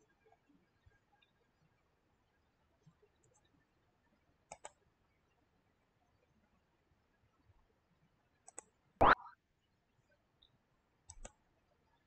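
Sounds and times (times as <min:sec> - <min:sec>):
computer mouse clicks: 0:04.5 - 0:04.8, 0:08.4 - 0:09.3, 0:11.1 - 0:11.4.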